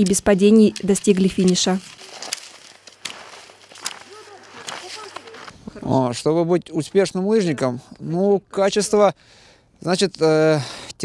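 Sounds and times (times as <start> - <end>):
skis swishing over snow: 0.8 - 5.6
distant voices calling out: 3.8 - 5.9.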